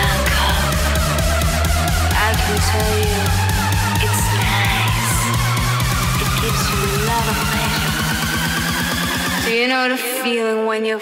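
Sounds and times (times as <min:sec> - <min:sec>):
rising synth sweep: 0:00.0 - 0:09.5
bass: 0:00.0 - 0:09.8.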